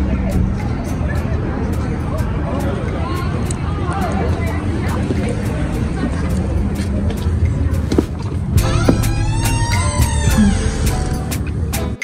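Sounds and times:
street traffic rumble: 0:00.0 - 0:12.0
music with beat and melody: 0:06.7 - 0:12.0.

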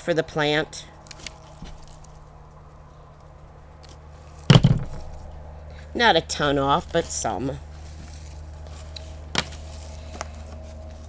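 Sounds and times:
scissors snipping stems: 0:01.0 - 0:02.3.

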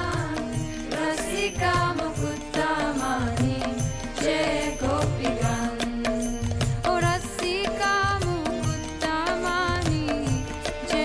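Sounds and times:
drum beats: 0:00.0 - 0:11.0.

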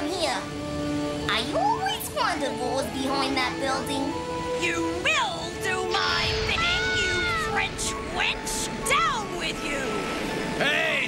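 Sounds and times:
cartoon soundtrack music: 0:00.0 - 0:11.0.

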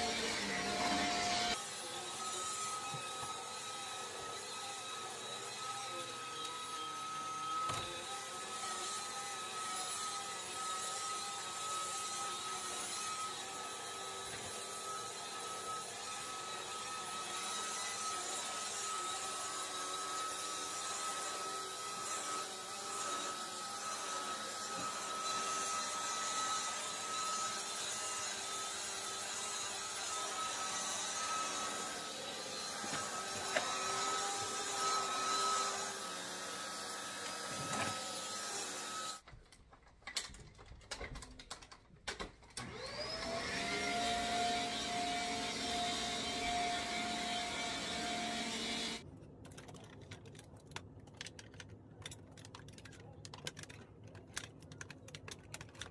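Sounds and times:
vacuum cleaner whining: 0:00.0 - 0:39.2, 0:42.6 - 0:49.0.

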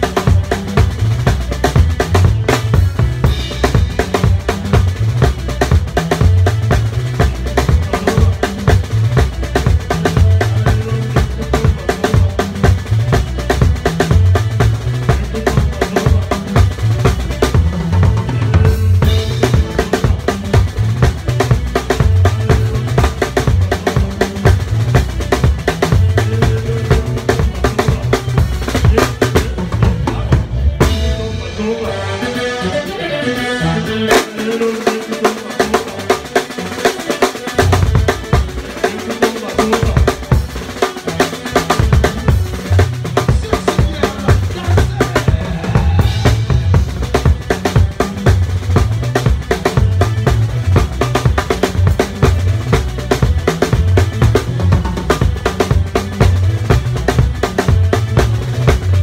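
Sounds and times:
drum kit playing: 0:00.0 - 0:59.0
held pitched instrument notes: 0:00.0 - 0:59.0.

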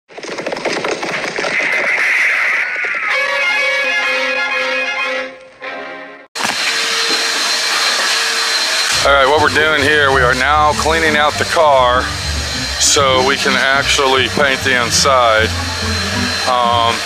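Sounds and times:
shop vacuum running with whine: 0:06.4 - 0:17.0
music intro: 0:08.9 - 0:17.0.

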